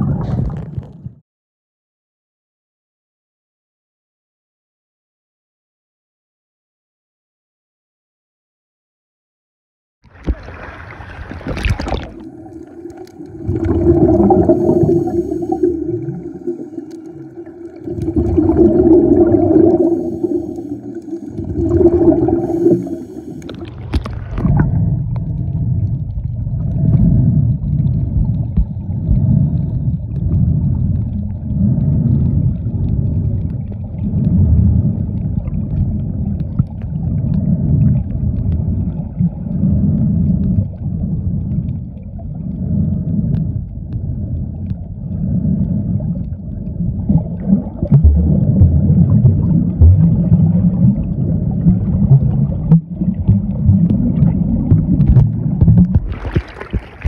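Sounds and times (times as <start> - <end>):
underwater hum: 0.0 - 1.2, 10.0 - 57.0
low rumbling pulses: 11.7 - 57.0.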